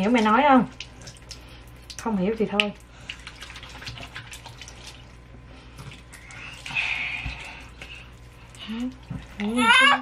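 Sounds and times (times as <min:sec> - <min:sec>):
hands washing under water: 0:00.0 - 0:09.5.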